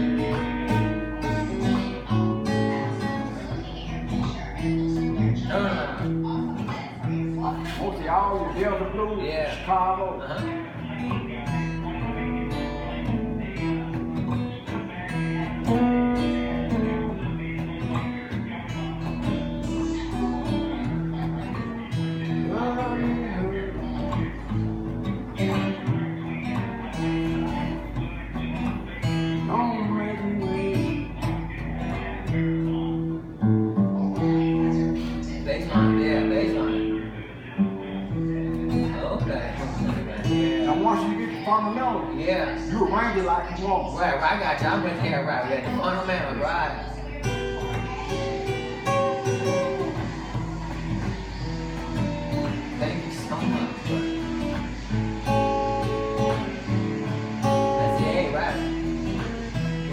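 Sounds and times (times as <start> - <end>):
acoustic guitar blues: 0.0 - 59.9.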